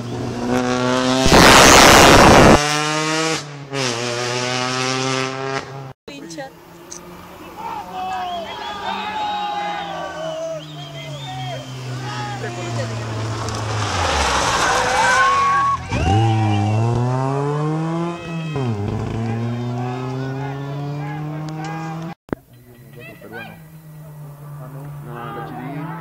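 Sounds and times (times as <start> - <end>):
rally car engine revving: 0.0 - 6.0, 6.6 - 22.2, 23.4 - 26.0
car sliding on gravel: 6.6 - 16.4.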